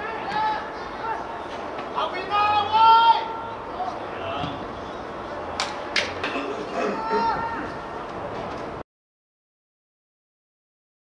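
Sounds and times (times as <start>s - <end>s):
players shouting: 0.0s - 8.3s.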